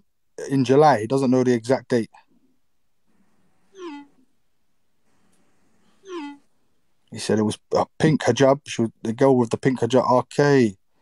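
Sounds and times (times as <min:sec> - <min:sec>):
meow-like calls: 0:03.7 - 0:04.2, 0:06.0 - 0:06.4.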